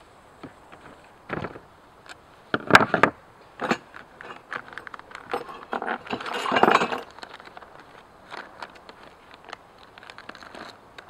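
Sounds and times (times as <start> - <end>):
metal hardware clinking and rattling: 2.6 - 8.0.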